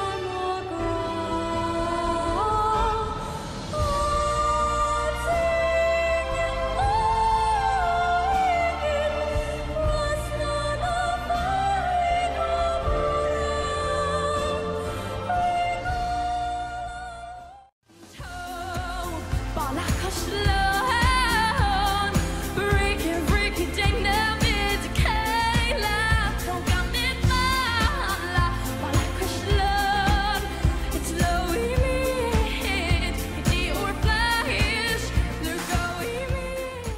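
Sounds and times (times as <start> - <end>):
woman singing with vibrato: 0.0 - 36.9
pop backing track with beat: 18.1 - 36.9.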